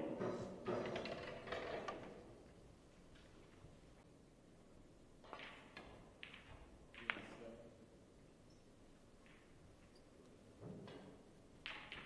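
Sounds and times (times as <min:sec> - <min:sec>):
snooker balls clicking: 0:00.0 - 0:03.8, 0:05.2 - 0:07.6, 0:08.9 - 0:12.0.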